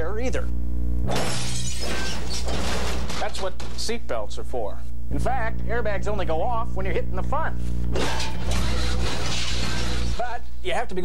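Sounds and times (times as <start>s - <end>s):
narration: 3.1s - 7.8s
crash smash: 8.0s - 10.3s.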